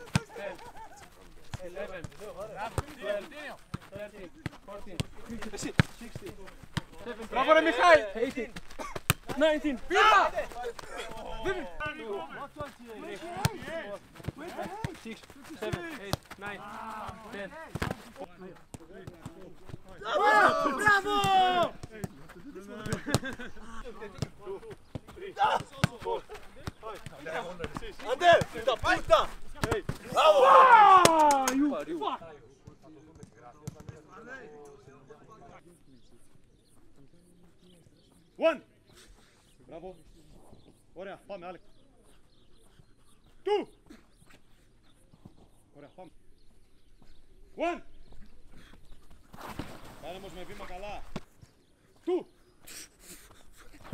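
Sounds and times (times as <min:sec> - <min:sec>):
players shouting: 0:01.6 - 0:18.3, 0:18.9 - 0:32.2
boot kicking football thuds: 0:08.4 - 0:11.0.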